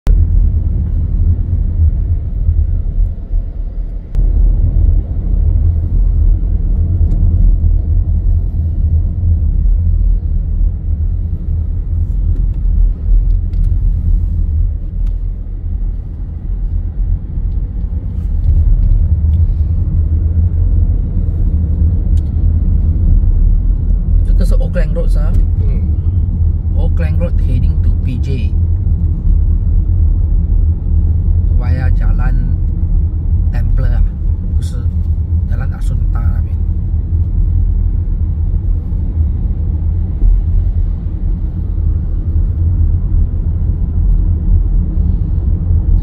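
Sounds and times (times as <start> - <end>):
car engine and tyre noise: 0.0 - 46.0.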